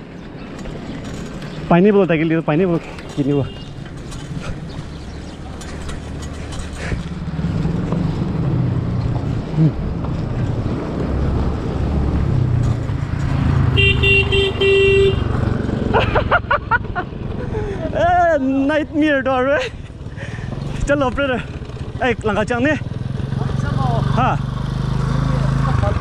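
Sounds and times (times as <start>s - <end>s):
motorcycle engine rumble: 0.0s - 26.0s
bicycle rolling on gravel: 0.2s - 8.3s
vehicle horn toot: 3.4s - 3.7s, 13.7s - 15.4s.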